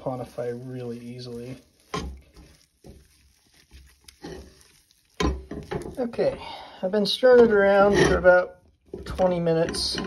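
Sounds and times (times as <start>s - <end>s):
spatula squelching and scraping paste: 0.0s - 6.5s.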